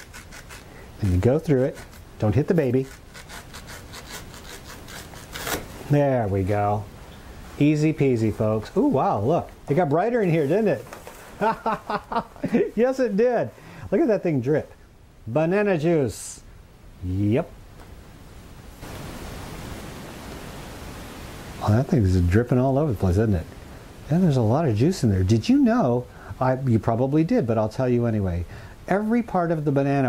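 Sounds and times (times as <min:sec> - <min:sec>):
knife sawing through plant stem: 0:00.0 - 0:05.8
steady hiss: 0:00.0 - 0:30.0.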